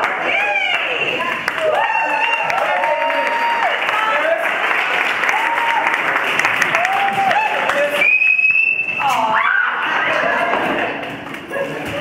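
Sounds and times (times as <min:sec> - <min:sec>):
crowd noise: 0:00.0 - 0:12.0
long high whistle: 0:08.0 - 0:09.2.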